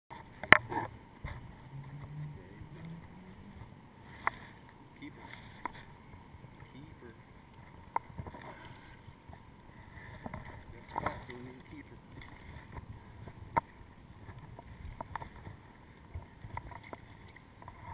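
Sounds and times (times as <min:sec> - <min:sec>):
water lapping: 0:00.2 - 0:17.9.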